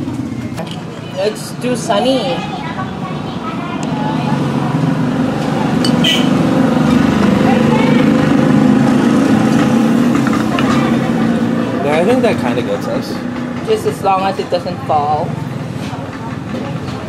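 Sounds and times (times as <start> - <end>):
vehicle engine running: 0.0 - 17.0.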